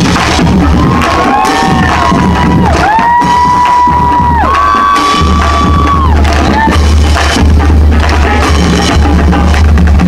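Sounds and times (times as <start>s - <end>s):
crowd cheering: 0.0s - 7.4s
drum line playing: 0.0s - 10.0s.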